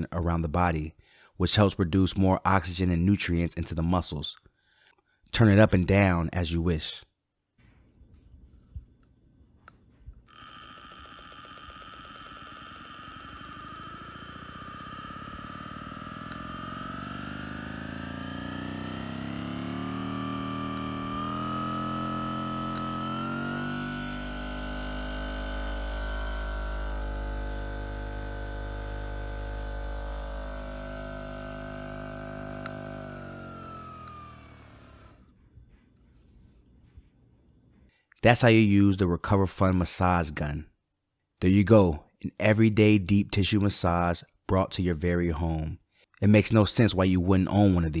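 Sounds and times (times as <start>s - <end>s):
massage gun motor whining: 10.1s - 35.4s.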